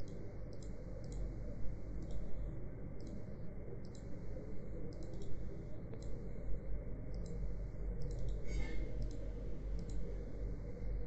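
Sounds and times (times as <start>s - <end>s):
computer mouse clicking: 0.0s - 1.3s, 2.0s - 2.3s, 3.0s - 4.1s, 4.9s - 6.2s, 7.1s - 7.4s, 8.0s - 8.4s, 9.0s - 10.1s
low microphone and room hum: 0.0s - 11.0s.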